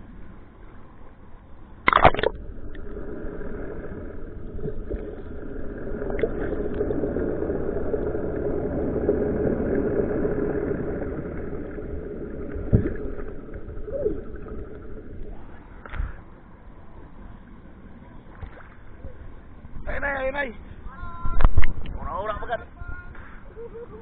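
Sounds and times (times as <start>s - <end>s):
muffled boat engine underwater: 0.0s - 19.9s, 20.6s - 22.1s.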